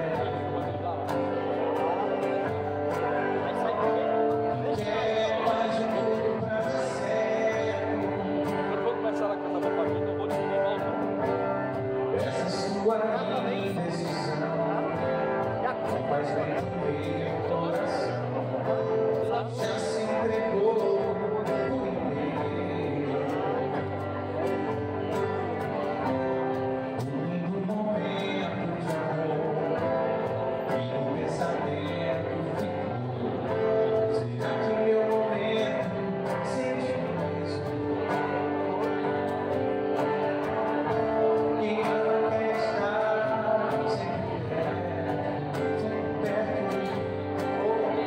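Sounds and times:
acoustic guitar and strings: 0:00.0 - 0:48.0
man singing: 0:00.0 - 0:48.0.

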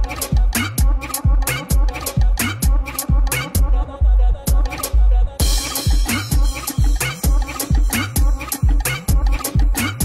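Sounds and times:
electronic club music: 0:00.0 - 0:10.0
heavy kick drum: 0:00.0 - 0:10.0.

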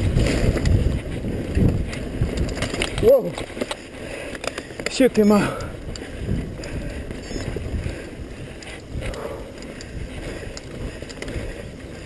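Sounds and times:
bike tyres rumbling on dirt: 0:00.0 - 0:12.0
wind buffeting microphone: 0:00.0 - 0:12.0.

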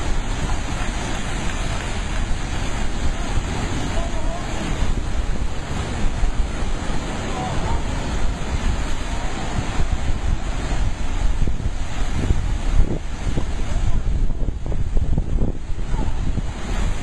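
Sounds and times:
ocean surf over rocks: 0:00.0 - 0:17.0
wind on microphone: 0:00.0 - 0:17.0.

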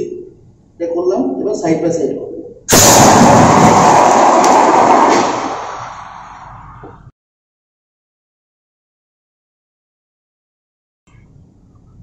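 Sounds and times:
fire extinguisher hissing: 0:02.7 - 0:06.0.

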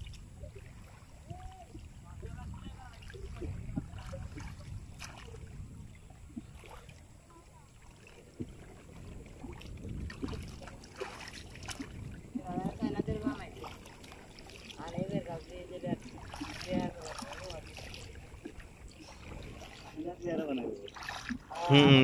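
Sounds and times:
water sloshing and lapping: 0:00.0 - 0:22.0
voices talking: 0:12.3 - 0:13.7, 0:14.8 - 0:22.0.

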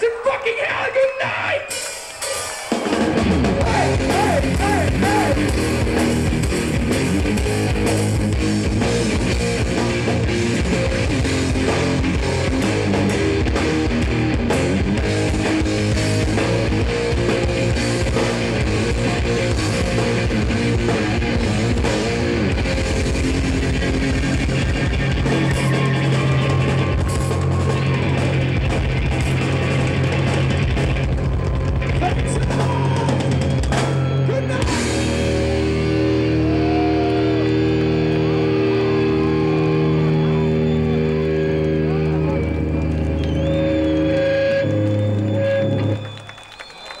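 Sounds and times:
thrash metal band playing live: 0:00.0 - 0:46.0
crowd cheering and shouting: 0:00.0 - 0:47.0
guitar feedback: 0:01.2 - 0:47.0
amplified guitars and bass chord: 0:02.8 - 0:46.1.

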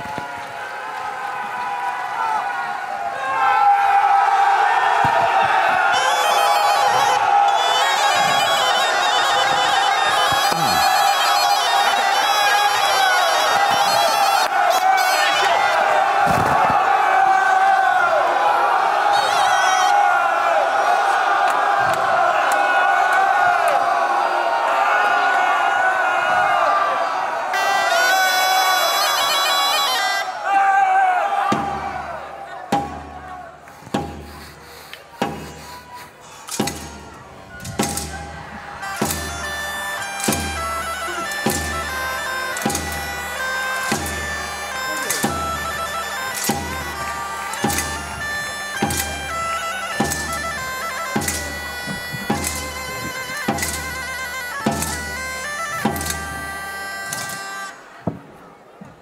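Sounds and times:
crowd of men shouting: 0:00.0 - 0:34.1, 0:35.1 - 0:58.0
wind instrument music: 0:05.2 - 0:17.0, 0:18.9 - 0:20.2, 0:27.5 - 0:30.8, 0:31.6 - 0:58.0.

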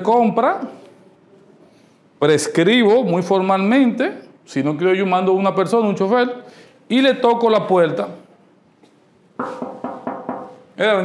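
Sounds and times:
hollow ringing knocks: 0:09.4 - 0:10.7.

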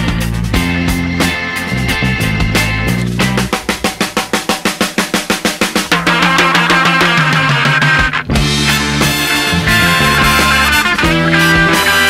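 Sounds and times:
blues rock band playing: 0:00.0 - 0:12.0
drum break: 0:00.0 - 0:12.0.

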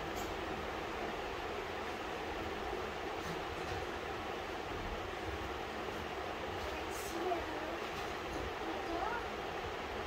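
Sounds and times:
background room noise: 0:00.0 - 0:10.0.

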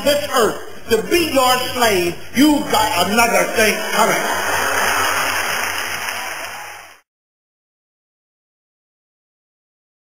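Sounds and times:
audience applauding: 0:03.9 - 0:07.0.

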